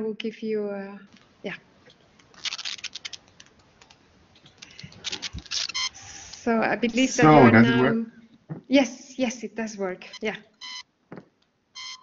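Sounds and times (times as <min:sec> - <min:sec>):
computer keyboard typing: 0:02.4 - 0:04.0.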